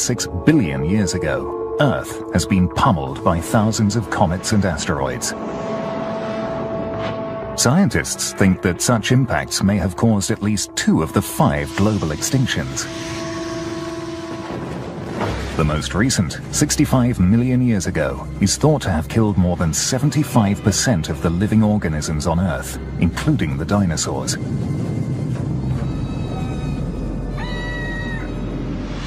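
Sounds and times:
held musical note: 0.0 - 18.6
rushing rumble: 0.0 - 29.0
dinosaur screech: 25.8 - 28.5.

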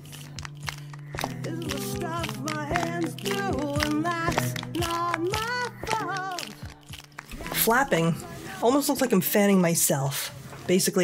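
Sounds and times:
sharp clicks: 0.0 - 7.6
person singing: 1.2 - 9.8.

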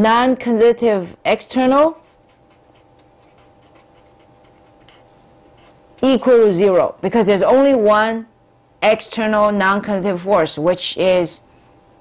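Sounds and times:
faint steady hum: 0.0 - 12.0
marker writing on paper: 1.8 - 6.2.

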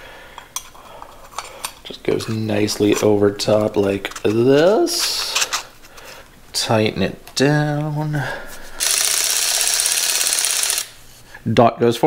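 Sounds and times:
ratchet clicking: 8.8 - 11.0.

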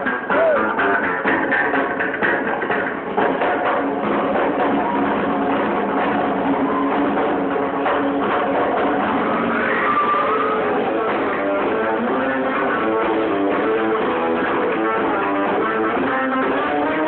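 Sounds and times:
frame drum beaten: 0.0 - 17.0
rockabilly band playing: 0.0 - 17.0.

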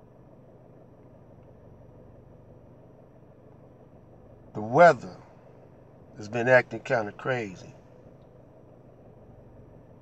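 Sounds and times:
car cabin hum: 0.0 - 10.0.

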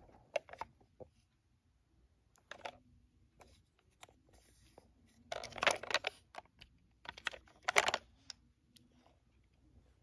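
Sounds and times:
plastic toy being handled: 0.0 - 1.4, 2.3 - 10.0.

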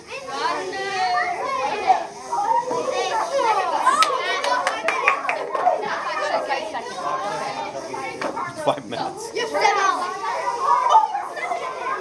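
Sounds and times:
children chattering: 0.0 - 12.0.

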